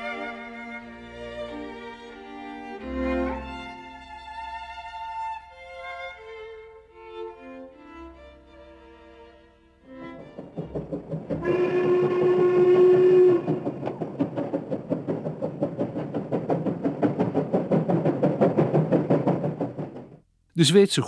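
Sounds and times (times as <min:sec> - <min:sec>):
locomotive exhaust beats: 0:10.0 - 0:20.3
steam locomotive whistle: 0:11.3 - 0:14.0.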